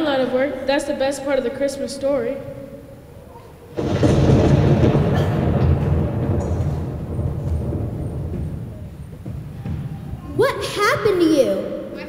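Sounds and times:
loud rumble: 3.7s - 10.5s.

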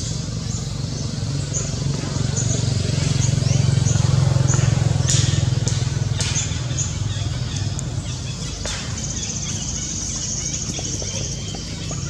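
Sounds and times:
motor engine humming: 0.0s - 12.0s.

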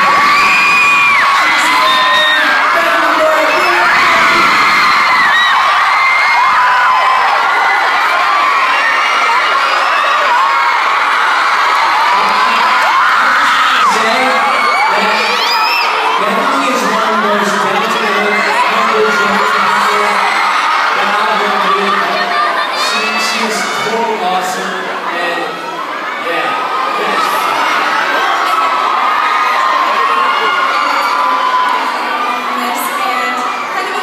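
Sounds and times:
crowd screaming and cheering: 0.0s - 34.0s.

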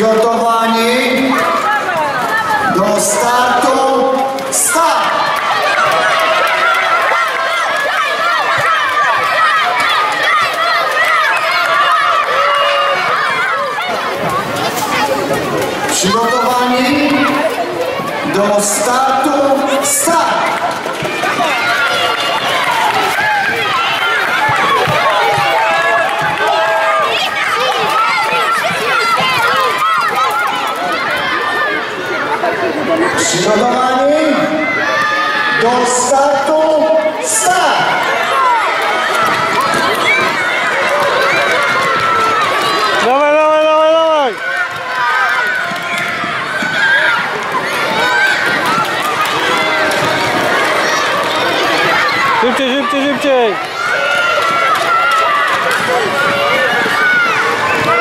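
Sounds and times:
children shouting and cheering: 0.0s - 58.0s.

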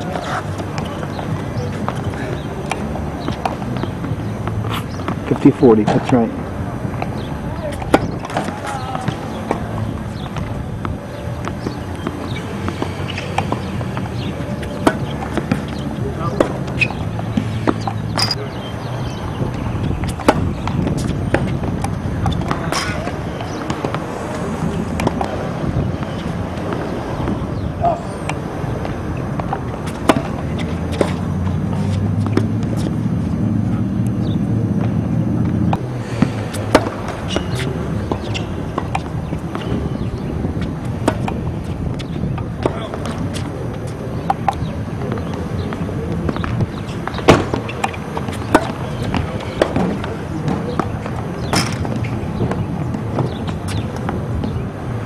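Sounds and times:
balls bouncing on hard court: 0.0s - 55.0s
tennis balls struck by racquets: 0.0s - 55.0s.

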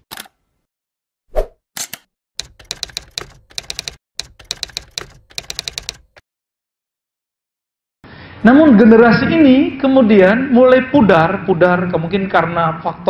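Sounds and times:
typewriter key clicks: 1.8s - 6.2s.

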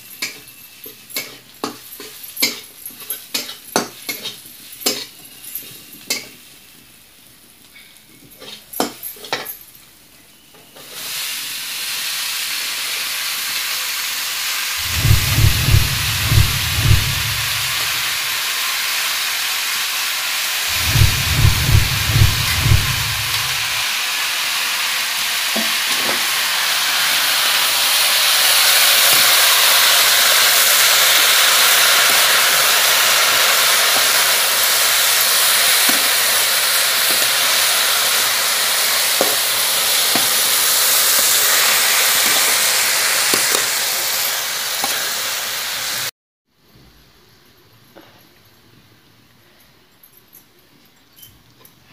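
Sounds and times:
mushrooms sizzling in oil: 0.0s - 5.2s, 10.8s - 46.1s
low pulsing thumps: 14.8s - 18.1s, 20.7s - 23.8s.

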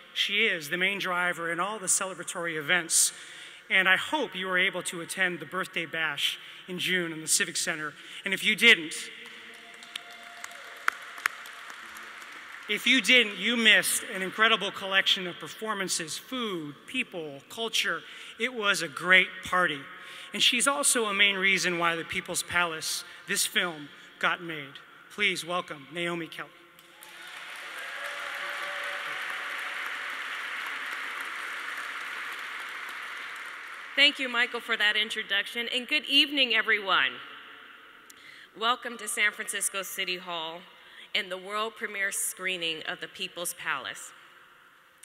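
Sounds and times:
single hand clap: 9.2s - 12.7s
audience applause: 9.2s - 13.2s, 26.8s - 34.0s.

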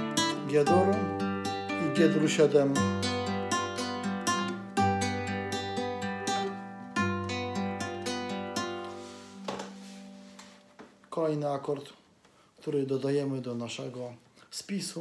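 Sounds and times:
fingerpicked classical guitar: 0.0s - 10.7s
scratchy guitar stroke: 7.3s - 10.8s.

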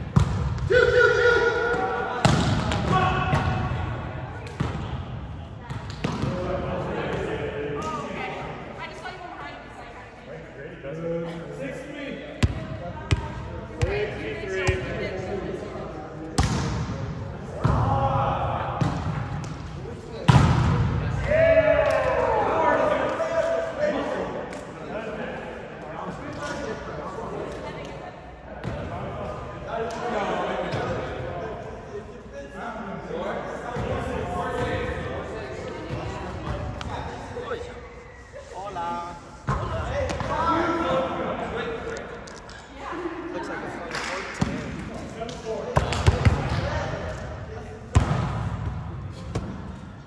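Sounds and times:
players shouting and talking: 0.0s - 10.0s, 10.6s - 49.8s
ball bouncing on gym floor: 0.1s - 0.6s.

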